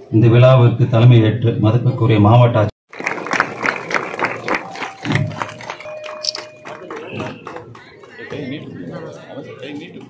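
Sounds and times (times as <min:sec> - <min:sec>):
crowd applauding: 0:02.9 - 0:09.2.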